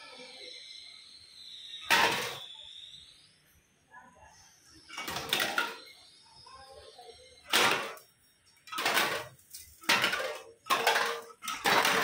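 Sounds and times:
faint steady high tone: 0:00.0 - 0:08.7
can clattering on stone floor: 0:01.9 - 0:02.4, 0:04.9 - 0:05.8, 0:07.5 - 0:12.0.

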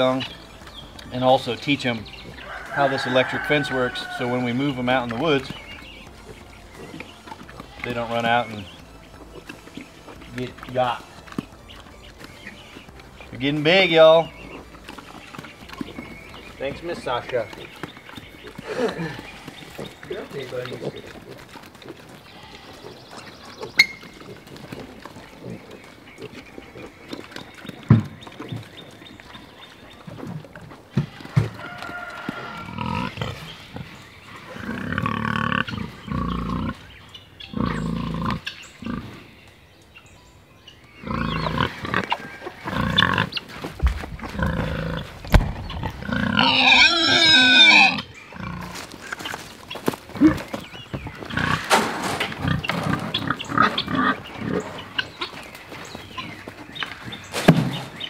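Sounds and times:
drawn-out pitched pig call: 0:00.0 - 0:39.4, 0:40.7 - 0:57.4
pigs grunting: 0:00.0 - 0:39.5, 0:40.9 - 0:58.0.

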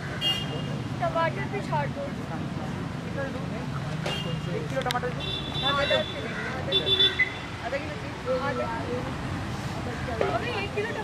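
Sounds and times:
street traffic rumble: 0:00.0 - 0:11.0
voices talking: 0:00.0 - 0:11.0.

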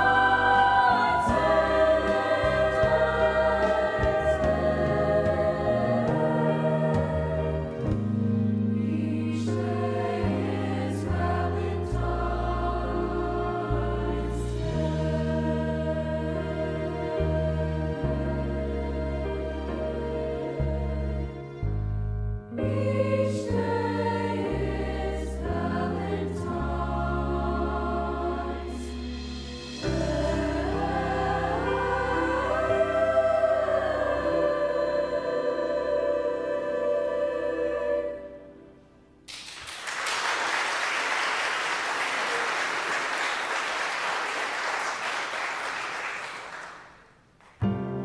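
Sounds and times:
choir singing sustained chords: 0:00.0 - 0:21.7, 0:22.5 - 0:39.2.

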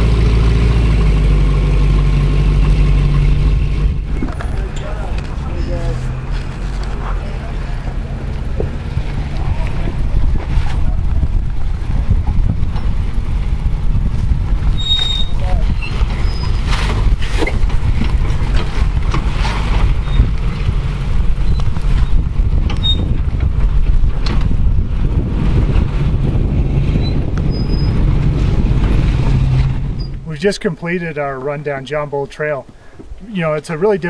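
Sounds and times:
car engine low rumble: 0:00.0 - 0:30.5.

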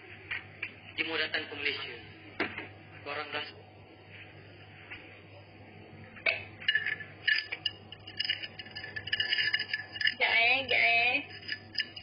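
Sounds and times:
steady low hum: 0:00.0 - 0:12.0
light clinks and taps: 0:06.7 - 0:12.0.

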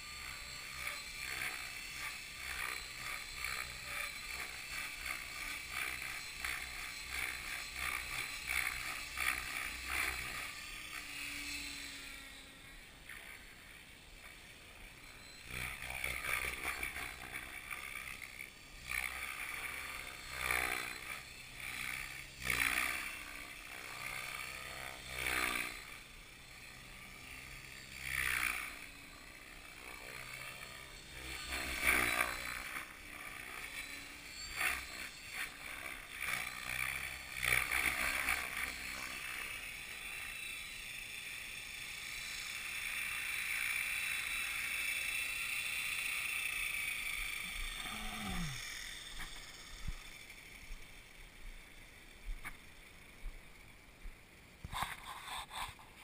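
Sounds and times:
model helicopter rotor whine: 0:00.0 - 0:56.0.

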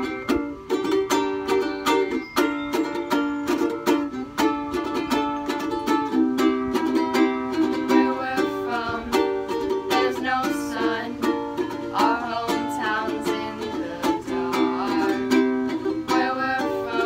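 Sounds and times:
ukulele strumming: 0:00.0 - 0:17.0
voices singing: 0:07.1 - 0:17.0.

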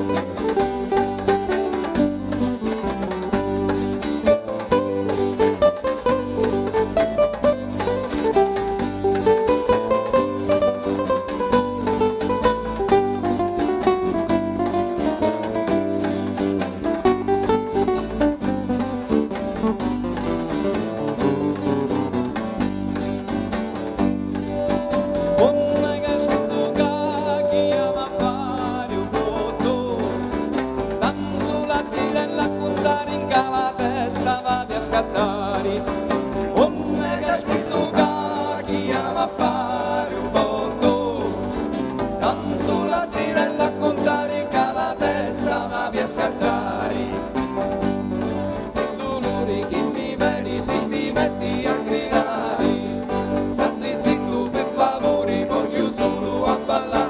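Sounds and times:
electric bass: 0:00.0 - 0:57.0
fast frame drum beat: 0:00.0 - 0:57.0
strummed acoustic guitars: 0:00.0 - 0:57.0.

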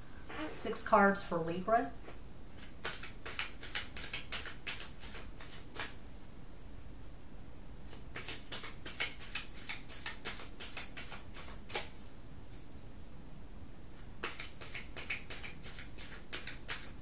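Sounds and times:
cards being shuffled: 0:02.5 - 0:06.0, 0:07.9 - 0:12.6, 0:14.0 - 0:17.0.

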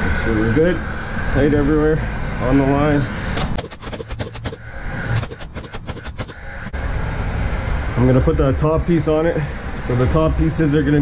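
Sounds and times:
nail gun shots: 0:03.4 - 0:06.4.

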